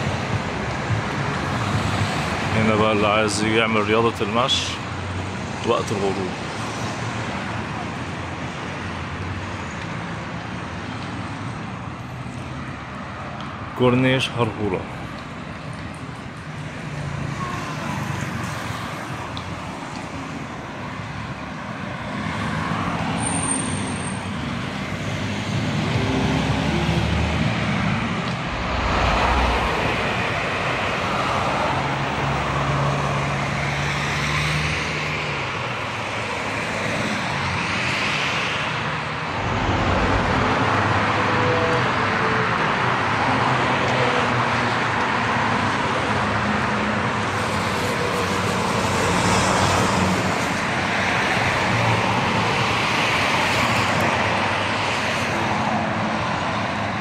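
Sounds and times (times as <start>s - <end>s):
cars driving past: 14.9s - 55.8s.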